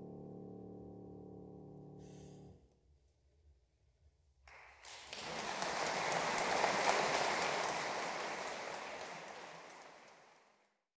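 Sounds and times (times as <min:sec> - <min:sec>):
audience applauding: 0:04.5 - 0:10.8.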